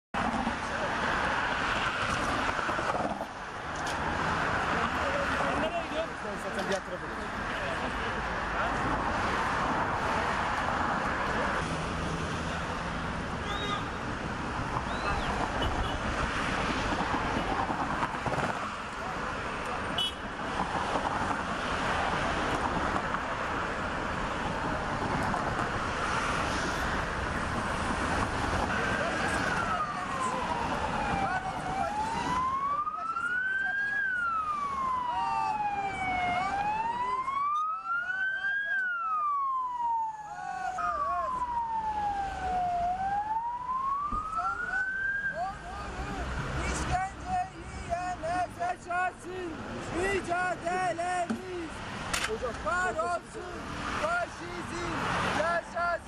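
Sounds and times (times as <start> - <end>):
street noise: 0.2 - 56.0
emergency vehicle siren wailing: 28.4 - 46.8.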